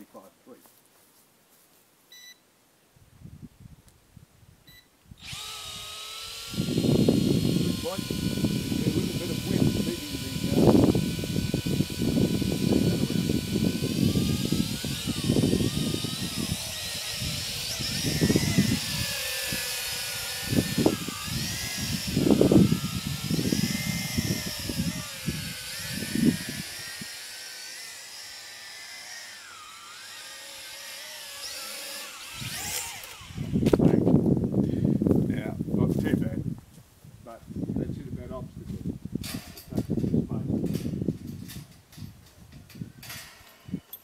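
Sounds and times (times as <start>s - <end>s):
wind gusting on microphone: 3.0s - 27.3s, 32.2s - 43.9s
drone propellers whining: 5.2s - 33.8s.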